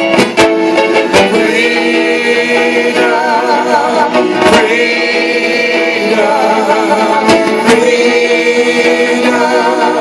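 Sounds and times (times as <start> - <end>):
gospel choir singing: 0.6 - 10.0.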